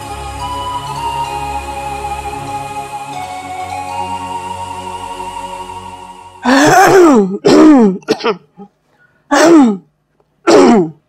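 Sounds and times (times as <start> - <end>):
person crying out: 6.4 - 8.0.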